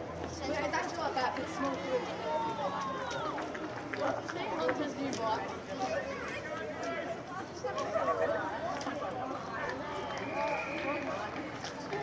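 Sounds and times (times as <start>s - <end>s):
voices shouting and calling out: 0.1s - 12.0s.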